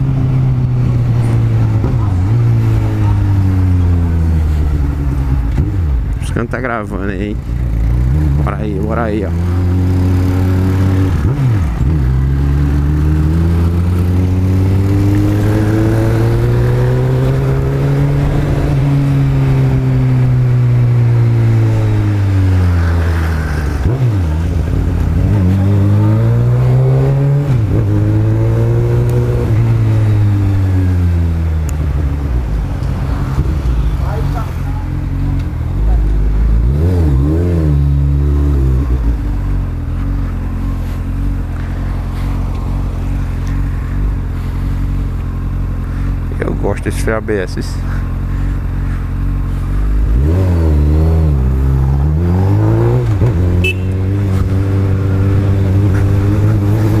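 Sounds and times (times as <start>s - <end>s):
motorcycle engine accelerating: 0.0s - 6.3s, 7.0s - 46.6s, 47.8s - 57.0s
motorcycle throttle blips: 53.0s - 57.0s.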